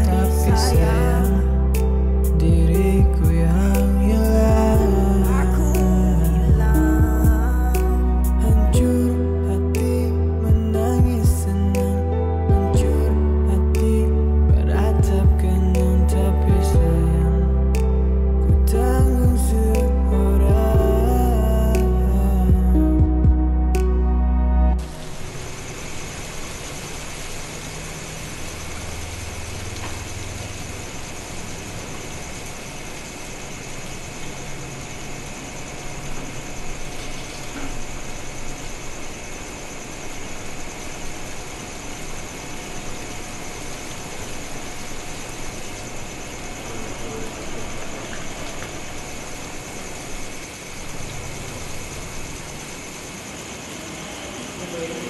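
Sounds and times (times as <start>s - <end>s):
room tone hiss: 0.0s - 15.0s, 23.7s - 55.0s
low hum: 0.0s - 54.8s.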